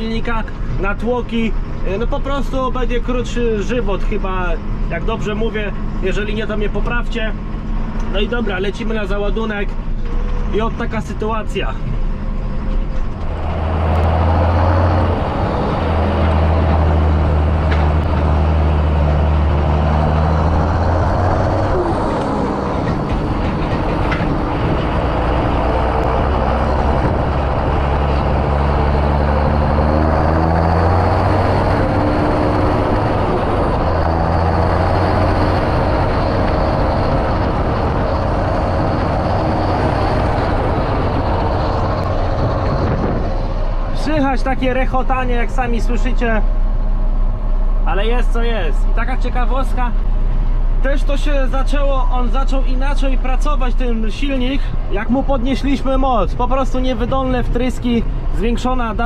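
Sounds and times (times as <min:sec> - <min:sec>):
tractor diesel engine croaking: 0:00.0 - 0:59.0.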